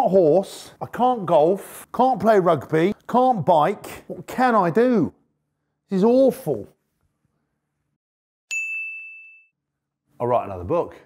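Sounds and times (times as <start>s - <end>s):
bright bell ding: 8.5s - 9.6s.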